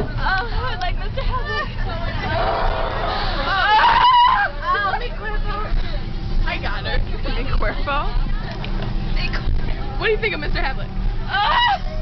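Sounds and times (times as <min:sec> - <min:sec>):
bus engine rumble: 0:00.0 - 0:12.0
voices chattering and laughing: 0:00.0 - 0:12.0.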